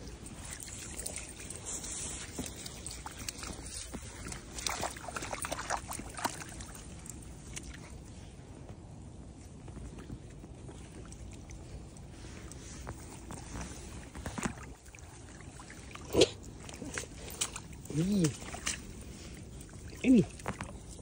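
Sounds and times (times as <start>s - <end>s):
dogs splashing through puddle: 0.0s - 8.6s, 9.5s - 21.0s.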